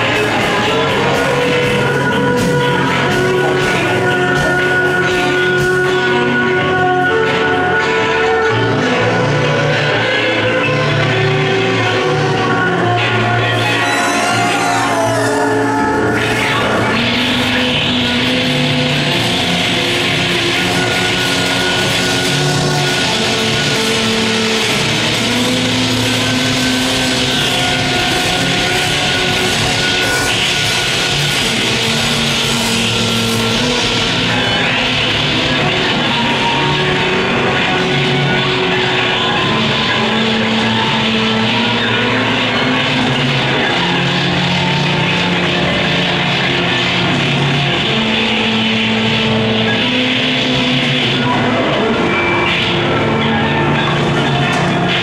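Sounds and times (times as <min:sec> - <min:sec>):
drum kit: 0:00.0 - 0:07.4
rock band playing loud drone: 0:00.0 - 0:55.0
bowed violin: 0:11.8 - 0:17.7
live psychedelic band music: 0:12.3 - 0:18.5.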